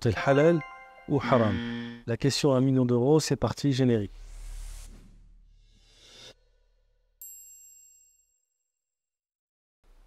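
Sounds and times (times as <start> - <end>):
bright high chime: 0.0 - 2.1.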